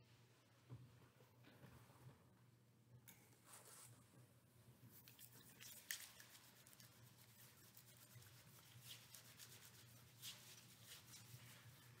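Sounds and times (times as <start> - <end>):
hands rubbing together: 5.0 - 12.0.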